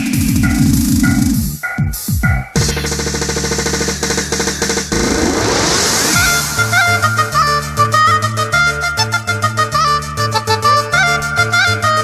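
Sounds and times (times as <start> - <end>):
held bass note: 2.4 - 9.4
fast snare drum roll: 2.6 - 7.8.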